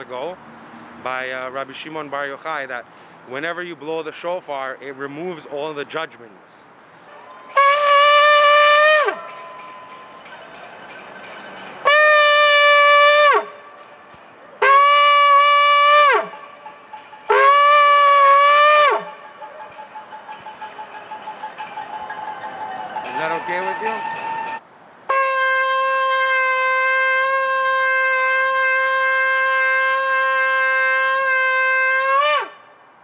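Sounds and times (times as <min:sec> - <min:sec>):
shofar blasts: 0:07.1 - 0:10.6, 0:11.8 - 0:32.8.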